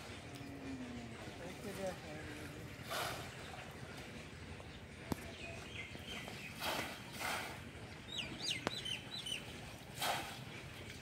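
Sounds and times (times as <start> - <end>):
bird chirping: 7.8 - 9.5.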